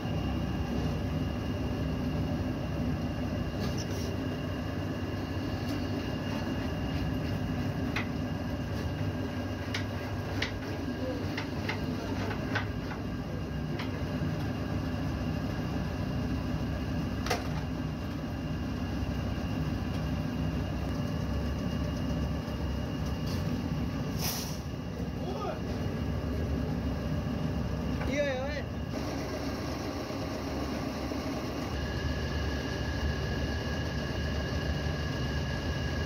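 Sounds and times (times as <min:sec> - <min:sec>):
plate-moulding press drone: 0:00.0 - 0:36.0.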